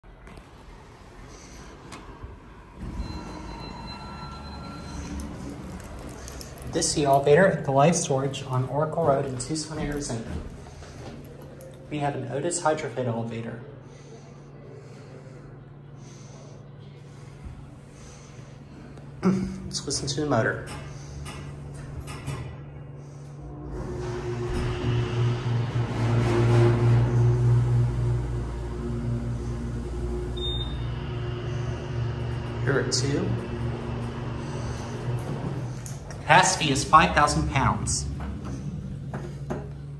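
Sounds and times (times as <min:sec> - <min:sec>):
elevator doors sliding open: 0:00.3 - 0:11.6, 0:23.4 - 0:39.9
faint door motor whine: 0:00.6 - 0:07.2, 0:20.8 - 0:36.4
brief high tone: 0:02.9 - 0:05.6.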